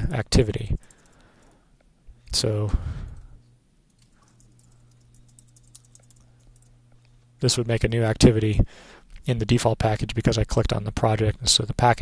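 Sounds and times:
steady low hum: 0.0 - 12.0
keyboard typing clicks: 3.9 - 6.7.

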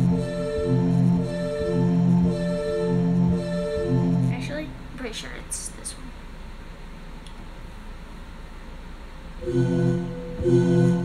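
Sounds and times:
electronic keyboard held note: 0.0 - 4.7, 9.4 - 11.0.

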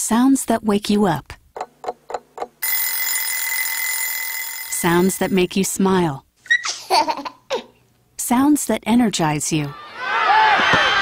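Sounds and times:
alarm clock ringing: 2.6 - 5.4.

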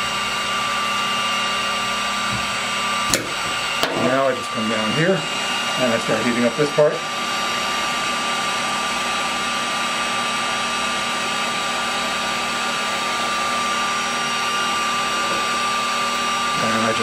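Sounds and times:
heat gun fan blowing with whine: 0.0 - 17.0.

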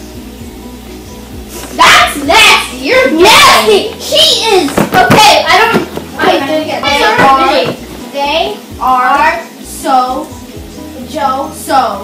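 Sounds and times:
girl talking: 1.8 - 10.3.

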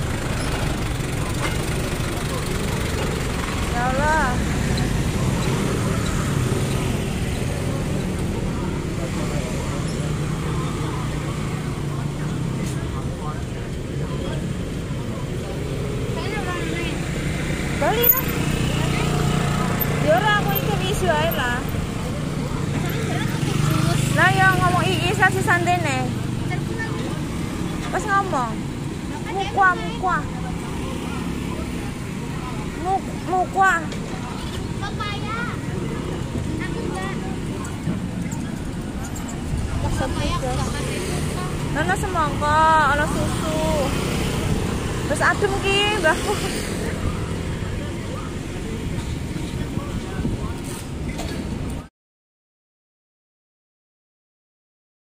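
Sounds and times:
motor scooter engines running: 0.0 - 51.9
street traffic: 0.0 - 51.9.

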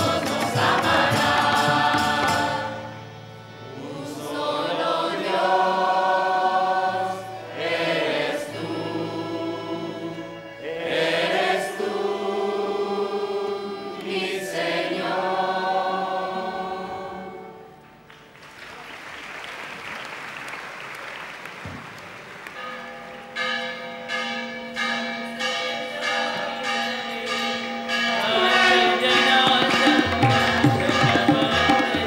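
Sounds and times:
choir singing: 0.0 - 17.8, 25.8 - 32.0
harmonium drone: 0.0 - 18.0, 27.9 - 32.0
applause: 18.1 - 23.2
tabla strokes: 29.2 - 32.0.

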